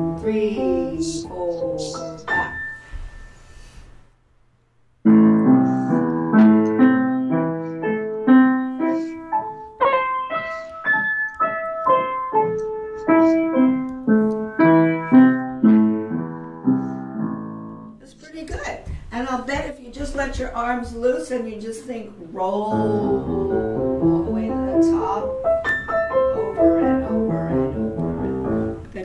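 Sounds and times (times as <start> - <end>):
upright piano playing: 0.0 - 3.6, 5.0 - 18.5, 22.4 - 29.0.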